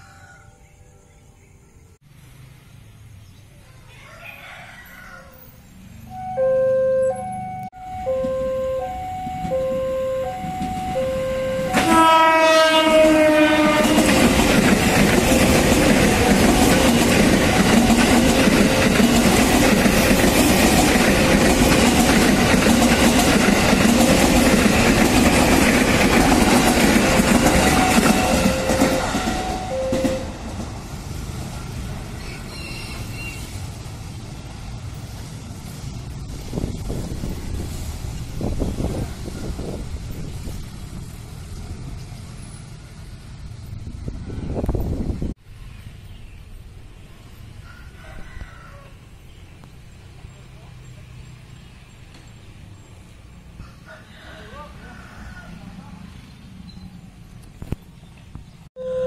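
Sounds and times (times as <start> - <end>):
level crossing alarm two-tone: 6.1 - 12.2, 15.2 - 19.4, 27.1 - 30.4
train horn blast: 6.1 - 20.0, 26.8 - 30.4, 58.8 - 59.0
train wheels on rail: 7.9 - 48.8.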